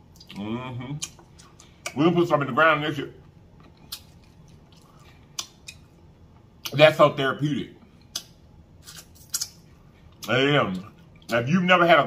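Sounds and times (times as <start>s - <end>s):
wet lip smacks and clicks: 3.6s - 5.9s, 8.0s - 9.6s.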